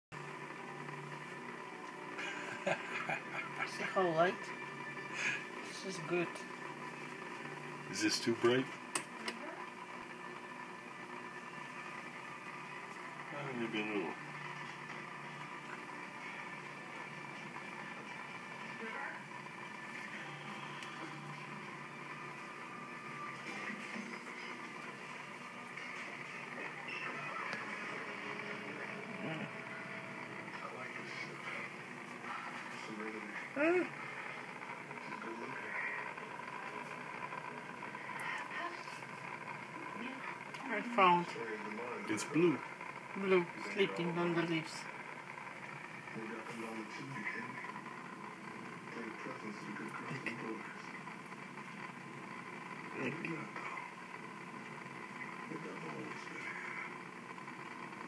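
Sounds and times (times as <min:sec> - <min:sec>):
aquarium filter humming: 0:00.2 - 0:58.0.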